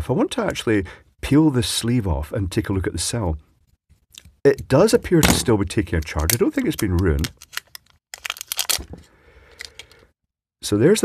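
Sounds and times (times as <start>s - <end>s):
plastic sleeve crinkling and tearing: 6.0s - 10.0s.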